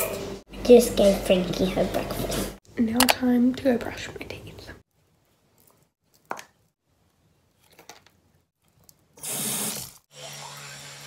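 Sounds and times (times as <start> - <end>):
electric toothbrush buzzing: 9.2 - 11.0.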